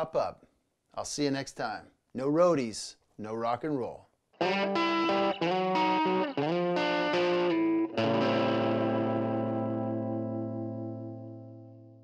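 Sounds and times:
distorted electric guitar chord: 4.4s - 12.0s.

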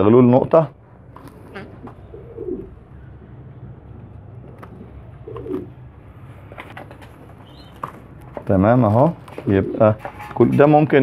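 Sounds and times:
pigeon cooing: 1.2s - 3.2s, 4.4s - 6.0s, 9.3s - 10.4s.

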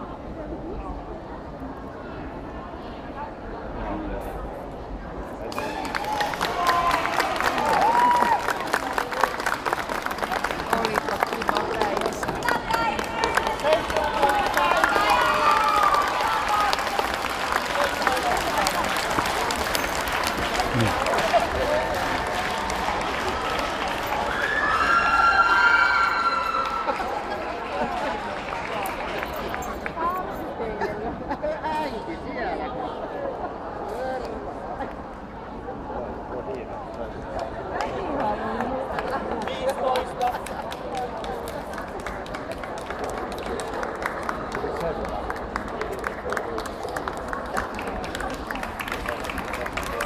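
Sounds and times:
crowd chatter: 0.0s - 50.0s
spectators applauding: 5.5s - 30.2s, 37.8s - 50.0s.

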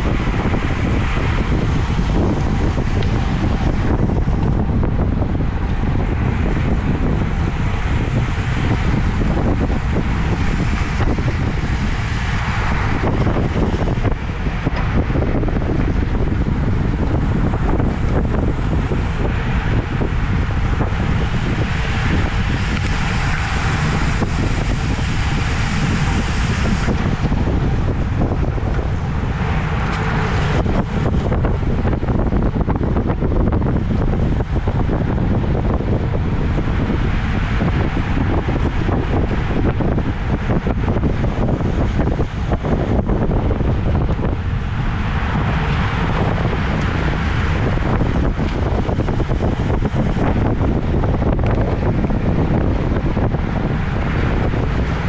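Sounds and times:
road and tyre rumble: 0.0s - 55.0s
wind rushing over microphone: 0.0s - 55.0s.

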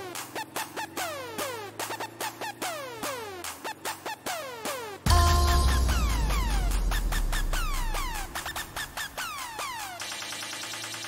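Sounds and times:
deep bass: 5.1s - 9.3s.

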